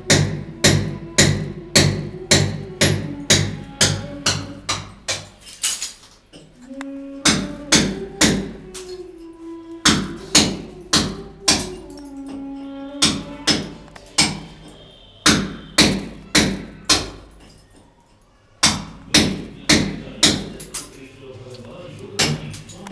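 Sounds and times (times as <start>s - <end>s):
hammer blows on masonry: 0.0s - 5.6s, 6.4s - 17.8s, 18.6s - 21.0s, 22.1s - 22.8s.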